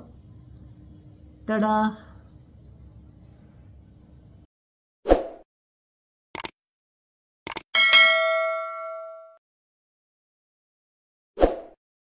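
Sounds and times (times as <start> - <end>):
bright bell ding: 7.8 - 9.4.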